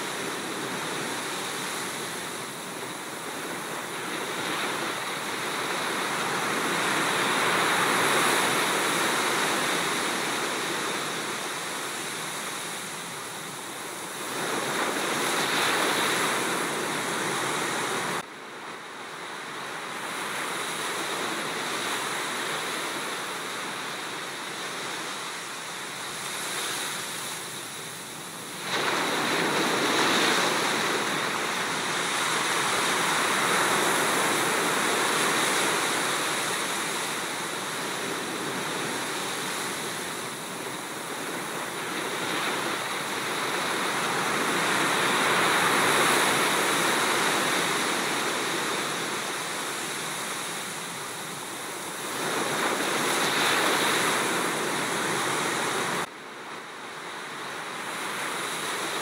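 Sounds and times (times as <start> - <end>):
sea waves breaking on sand: 0.0 - 59.0.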